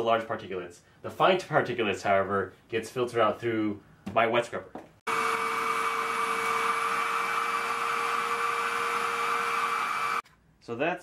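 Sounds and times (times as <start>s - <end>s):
vacuum motor whining: 5.1s - 10.2s.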